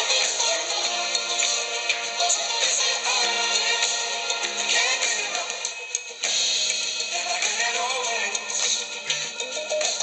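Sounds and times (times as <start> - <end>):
drums and hi-hat backing track: 0.0 - 10.0.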